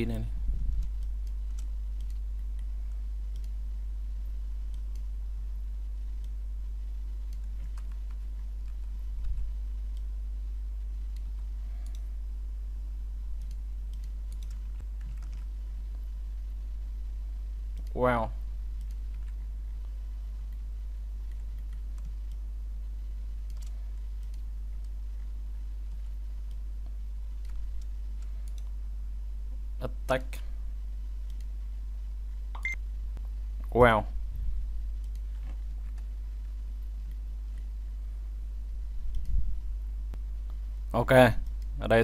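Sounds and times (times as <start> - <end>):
steady low hum: 0.0 - 42.0
faint clicks: 3.3 - 3.6, 11.1 - 12.1, 13.4 - 15.5, 23.4 - 28.8
short high beep: 32.6 - 32.8.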